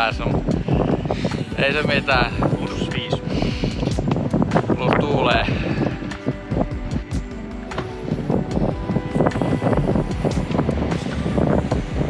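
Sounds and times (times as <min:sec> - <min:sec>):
low rumble: 0:00.0 - 0:12.0
music of repeated notes: 0:00.1 - 0:12.0.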